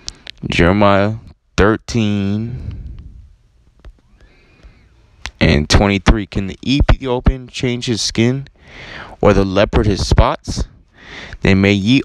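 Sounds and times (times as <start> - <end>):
man speaking: 0.3 - 2.9, 5.3 - 12.0.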